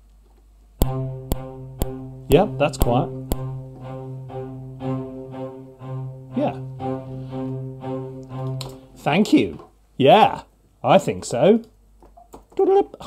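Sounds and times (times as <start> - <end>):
soft cello spiccato notes: 0.8 - 9.6.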